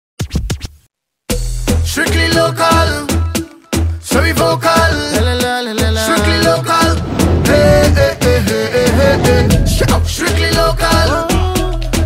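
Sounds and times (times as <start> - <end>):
record scratching on a turntable: 0.2 - 0.8
soca music with heavy bass: 1.3 - 12.0.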